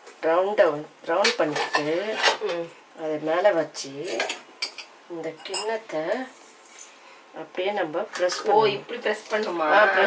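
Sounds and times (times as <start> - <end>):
spoon clinking on steel vessels: 4.0 - 5.8.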